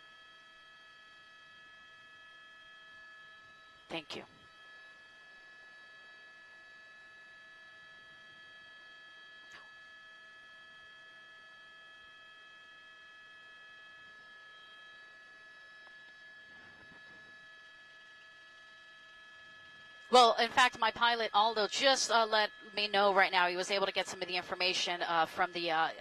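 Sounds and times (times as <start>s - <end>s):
faint electrical hum: 0.0s - 26.0s.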